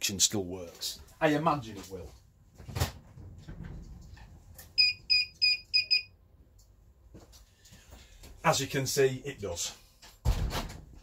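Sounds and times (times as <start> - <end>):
alarm buzzer beeping: 4.8 - 6.1.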